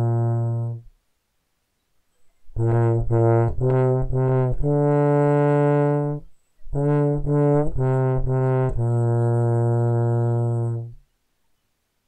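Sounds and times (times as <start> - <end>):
trombone holding a low note: 0.0 - 0.9, 2.5 - 11.0.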